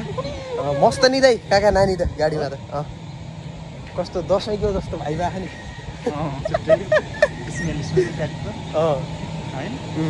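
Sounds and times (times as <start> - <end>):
men laughing: 0.0 - 1.2, 5.7 - 9.1
steady low hum: 0.0 - 10.0
men's voices: 3.8 - 10.0.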